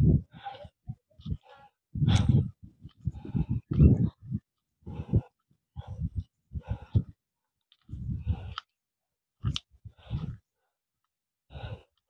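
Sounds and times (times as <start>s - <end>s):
heavy laboured breathing: 0.0s - 7.2s, 7.8s - 8.7s, 9.8s - 10.8s, 11.5s - 12.0s.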